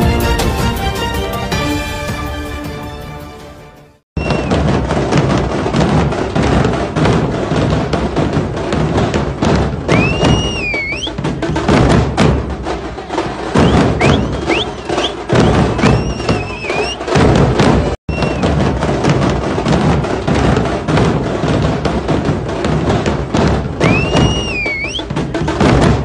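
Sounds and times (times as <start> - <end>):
shrill whistles: 4.2 - 4.6, 9.9 - 11.2, 13.6 - 17.2, 18.1 - 18.5, 23.8 - 25.1
loud rapid drumming: 4.4 - 26.0
crowd din: 12.5 - 18.6.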